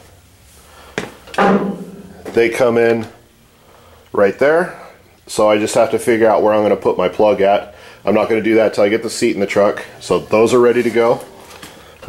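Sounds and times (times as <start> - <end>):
knock on sheet metal ringing: 1.4 - 2.3.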